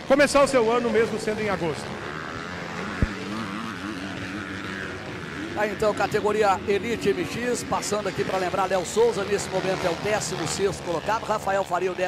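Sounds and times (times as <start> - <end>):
motocross bike engine buzzing: 0.0 - 12.0.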